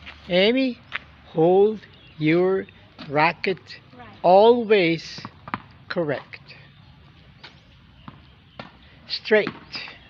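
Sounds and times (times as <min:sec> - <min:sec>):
tennis ball bouncing on concrete: 0:05.0 - 0:06.5, 0:07.4 - 0:10.0.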